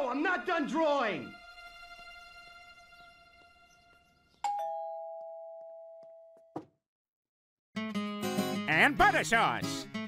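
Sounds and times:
two-tone doorbell chime: 4.4s - 6.5s.

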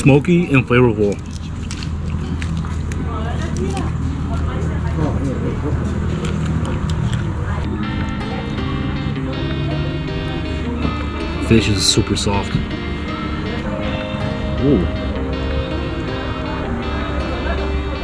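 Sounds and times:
music with long held notes: 7.4s - 18.0s.

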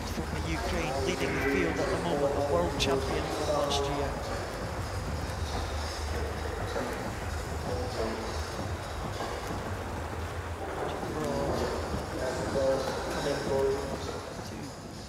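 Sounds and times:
indistinct voices: 0.0s - 9.9s.

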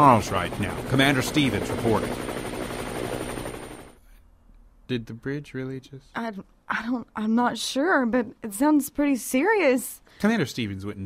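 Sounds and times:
helicopter rotor chopping: 0.0s - 4.0s.

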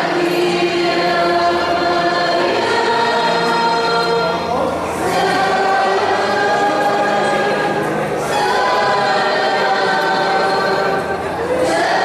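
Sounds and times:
church choir singing a hymn: 0.0s - 12.0s.

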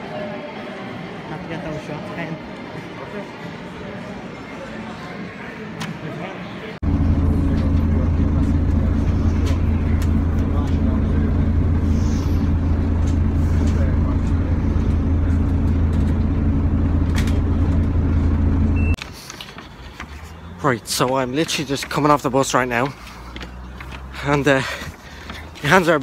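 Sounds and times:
bus engine droning: 6.8s - 26.0s.

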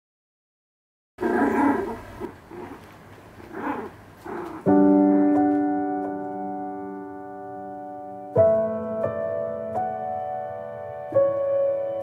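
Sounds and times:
small dog vocalising: 1.2s - 4.7s.

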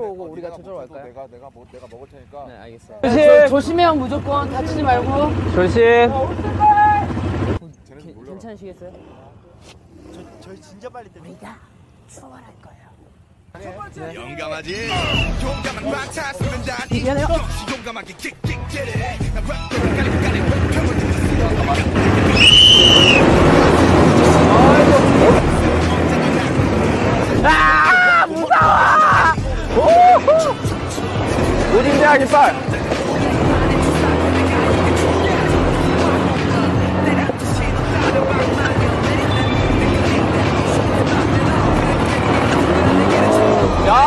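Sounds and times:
quad bike engines droning: 3.0s - 7.6s, 19.5s - 44.0s
high whistle-like tone: 14.8s - 15.4s, 22.3s - 23.3s
background music: 14.9s - 44.0s.

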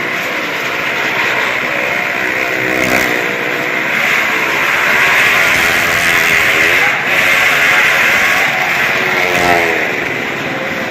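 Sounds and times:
car and motorcycle engines revving: 0.0s - 10.9s.

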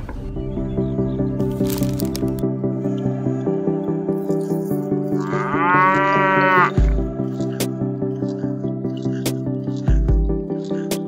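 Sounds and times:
background music with plucked beat: 0.0s - 11.0s.

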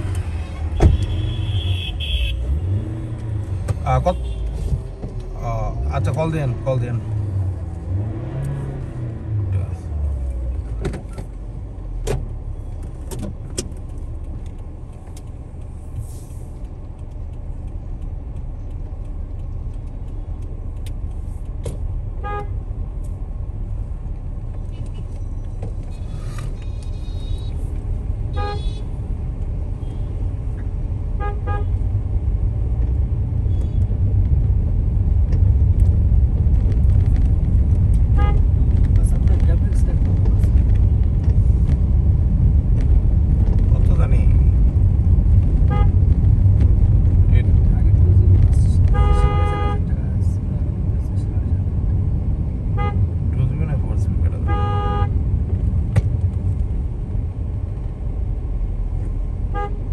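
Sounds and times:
road and engine rumble: 0.0s - 59.9s
car horn toots: 0.8s - 2.5s, 22.2s - 22.6s, 28.3s - 28.9s, 31.2s - 31.8s, 38.1s - 38.5s, 45.7s - 46.0s, 48.9s - 49.9s, 52.7s - 53.0s, 54.4s - 55.2s, 59.5s - 59.9s.

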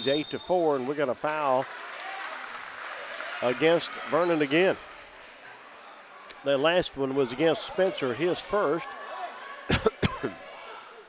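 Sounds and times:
faint background noise: 0.0s - 11.0s
man coughing: 9.7s - 10.3s.

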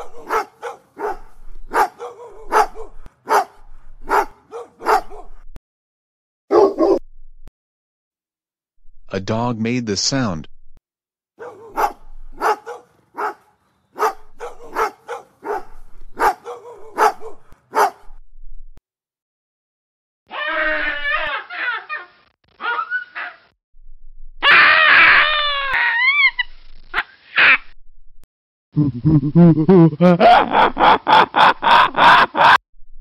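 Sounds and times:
dog barking: 0.0s - 5.4s, 6.5s - 7.0s, 11.4s - 18.1s.

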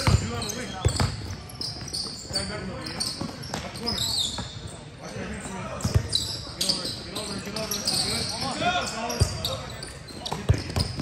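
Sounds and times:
basketball bouncing on gym floor: 0.0s - 1.9s, 10.3s - 11.0s
sneakers squeaking: 0.0s - 11.0s
voices echoing in gym: 0.0s - 11.0s.

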